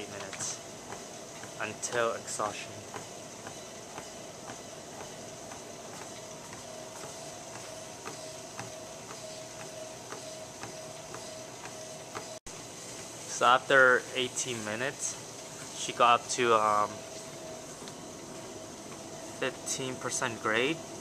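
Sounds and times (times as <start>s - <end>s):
treadmill motor whine: 0.0s - 21.0s
footfalls on treadmill belt: 0.1s - 13.1s.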